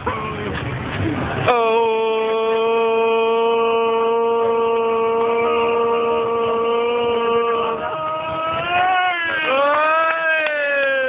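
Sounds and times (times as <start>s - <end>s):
person shouting long ooh: 1.5s - 11.0s.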